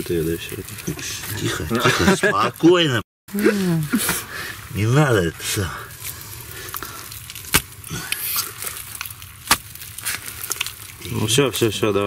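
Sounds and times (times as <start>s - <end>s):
wet mud crackling by hand: 3.4s - 12.0s.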